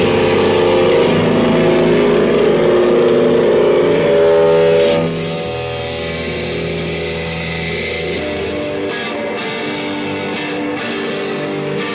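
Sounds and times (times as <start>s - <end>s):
live rock band playing: 0.0s - 11.9s.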